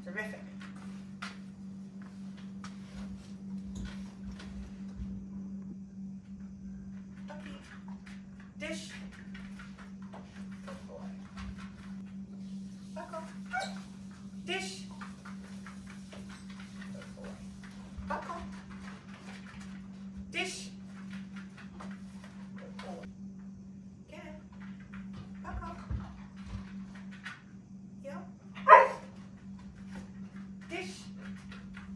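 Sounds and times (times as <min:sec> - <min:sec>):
steady low hum: 0:00.0 - 0:31.9
dog barking: 0:13.5 - 0:13.8, 0:28.6 - 0:29.2.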